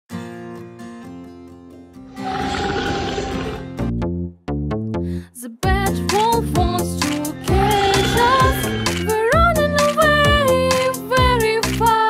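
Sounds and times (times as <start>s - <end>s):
person growling like a wolf: 2.1s - 3.8s
children's song music: 5.1s - 12.0s.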